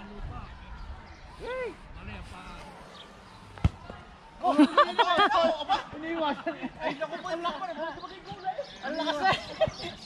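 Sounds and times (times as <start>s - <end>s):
sharp thump: 3.6s - 4.0s.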